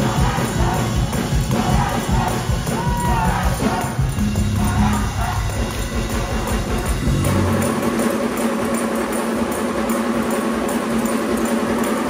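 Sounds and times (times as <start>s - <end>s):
crowd noise: 0.0s - 12.0s
live gospel music: 0.0s - 12.0s.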